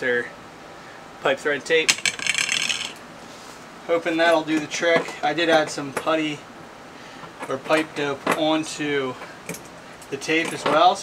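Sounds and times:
tools clicking rattle: 0:01.9 - 0:03.0.

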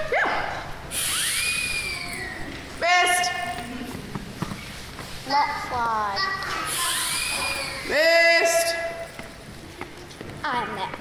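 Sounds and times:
gliding whistle effect: 0:01.0 - 0:02.3
child speaking: 0:05.2 - 0:07.9, 0:10.4 - 0:11.0.

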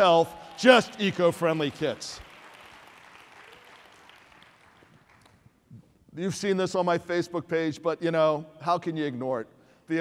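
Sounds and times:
faint audience applause: 0:00.0 - 0:05.4.

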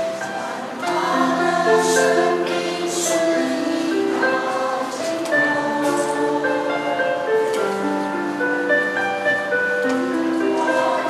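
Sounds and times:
women's choir singing in harmony: 0:00.0 - 0:08.7, 0:09.4 - 0:11.0.

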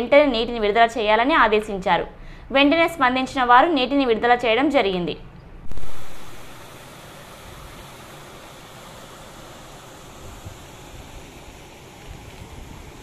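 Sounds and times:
water rushing along a canal: 0:05.7 - 0:13.0.

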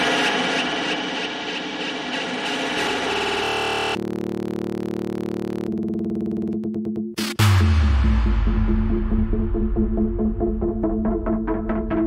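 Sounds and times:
noisy synth wash: 0:00.0 - 0:06.6.

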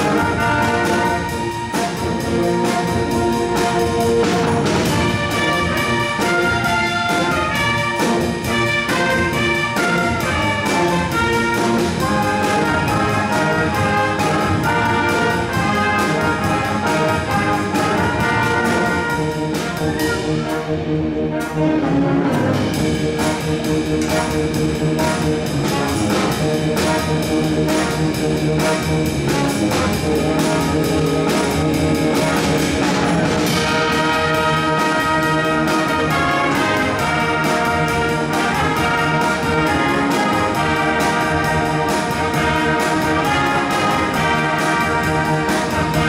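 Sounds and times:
drum kit steady beat: 0:00.0 - 0:20.7, 0:22.6 - 0:46.0
jazz band brass playing: 0:00.0 - 0:46.0.

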